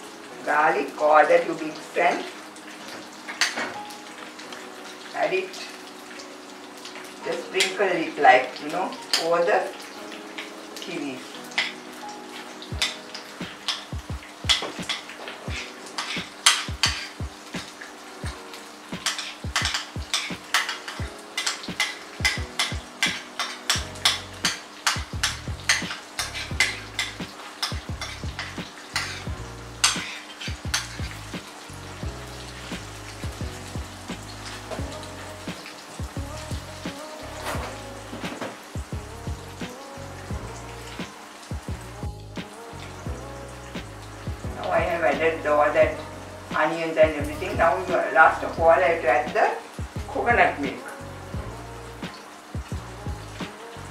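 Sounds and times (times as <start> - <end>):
food sizzling in hot oil: 0.0 - 53.9
metal spoon tapping and scraping: 14.5 - 17.2, 19.0 - 29.2, 29.8 - 31.0.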